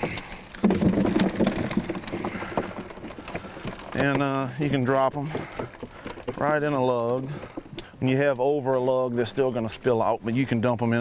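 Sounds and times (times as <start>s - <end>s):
fish flopping: 0.0s - 8.0s
water dripping and splattering: 0.0s - 8.0s.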